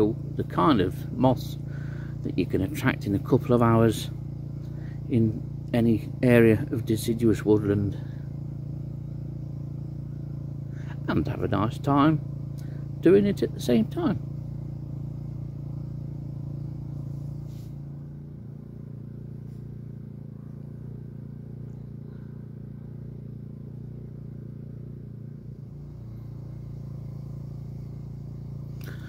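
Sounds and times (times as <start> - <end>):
low engine hum: 0.0 - 29.0.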